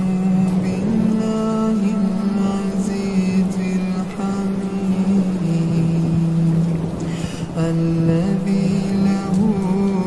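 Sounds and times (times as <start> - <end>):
man reciting in melodic chant: 0.0 - 10.0.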